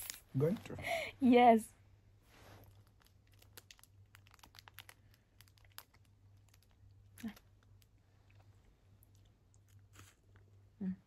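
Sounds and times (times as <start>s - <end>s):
plastic wrapper crinkling: 2.6s - 7.9s.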